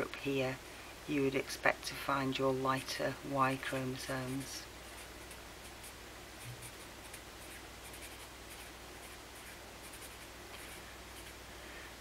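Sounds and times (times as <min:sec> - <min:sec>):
steady low hum: 0:00.0 - 0:12.0
pen scratching on paper: 0:04.1 - 0:11.3.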